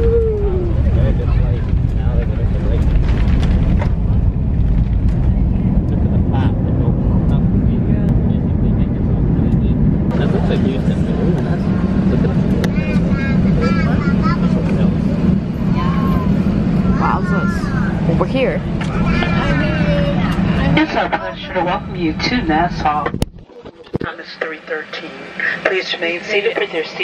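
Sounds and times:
airliner engines and wheels rumbling: 0:00.0 - 0:27.0
voices: 0:05.2 - 0:27.0.

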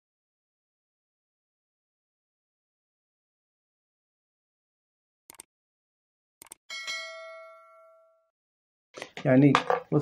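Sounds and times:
notification bell ding: 0:06.7 - 0:08.2.

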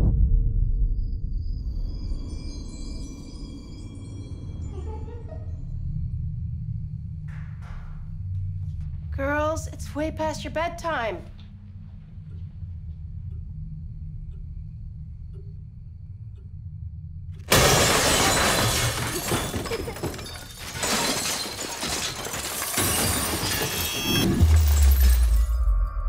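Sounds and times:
deep boom: 0:00.0 - 0:02.1
low rumbling drone: 0:00.0 - 0:10.1, 0:11.2 - 0:17.5
loud crash of shattering: 0:17.5 - 0:25.6.

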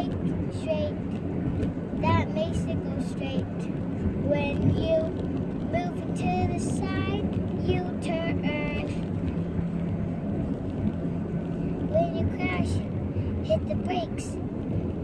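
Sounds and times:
child singing: 0:00.0 - 0:01.0, 0:02.0 - 0:03.5, 0:05.7 - 0:09.0, 0:11.9 - 0:12.8, 0:13.4 - 0:14.4
steady low hum: 0:00.0 - 0:15.0.

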